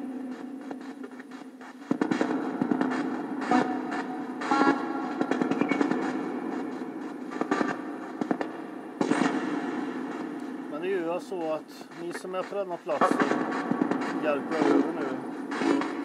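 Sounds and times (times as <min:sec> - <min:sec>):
crackling static: 0:00.0 - 0:16.0
low hum: 0:00.0 - 0:16.0.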